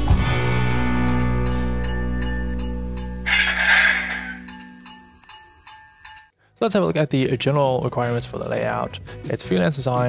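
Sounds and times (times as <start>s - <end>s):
ringing chime: 0.7s - 6.3s.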